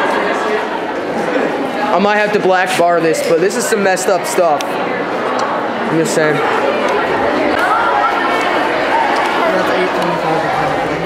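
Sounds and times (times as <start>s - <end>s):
crowd chatter in echoing hall: 0.0s - 11.0s.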